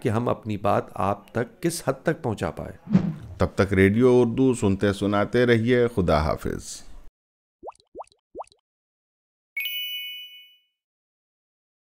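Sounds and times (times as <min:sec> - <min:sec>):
quick rising pops: 0:02.8 - 0:03.4
bright bell-like ding: 0:09.6 - 0:10.8.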